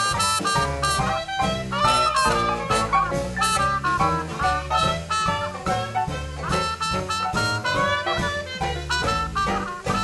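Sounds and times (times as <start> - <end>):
jazz band playing swing: 0.0 - 10.0.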